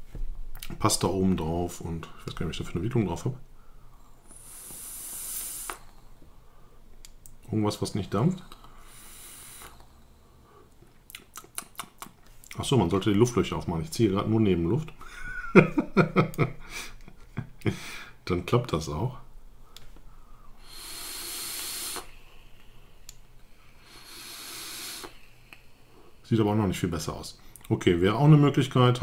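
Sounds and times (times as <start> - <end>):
faint hiss of air drawn: 3.7 - 6.8, 7.8 - 10.7, 19.8 - 27.4.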